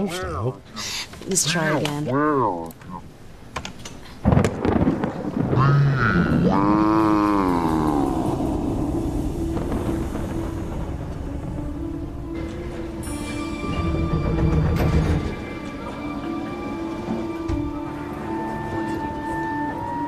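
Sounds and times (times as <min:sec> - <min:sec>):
storm rumble: 0:03.0 - 0:20.0
thunder crack: 0:04.2 - 0:20.0.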